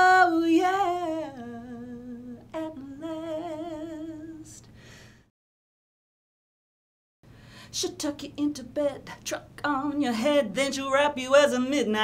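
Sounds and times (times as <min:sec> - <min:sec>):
woman singing unaccompanied: 0:00.0 - 0:04.7, 0:07.7 - 0:12.0.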